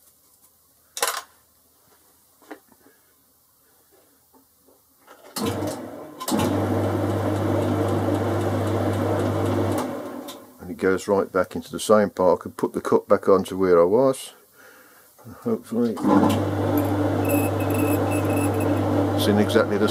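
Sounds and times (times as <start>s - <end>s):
lathe humming: 16.5s - 19.2s.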